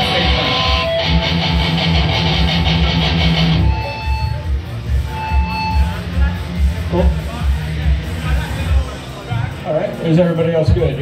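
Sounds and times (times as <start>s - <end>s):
electric guitar riff: 0.0s - 7.2s.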